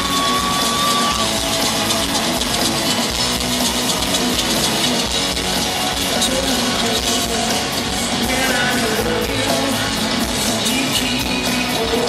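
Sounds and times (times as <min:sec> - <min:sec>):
electric guitar: 0:00.0 - 0:12.0
live rock band playing: 0:00.0 - 0:12.0.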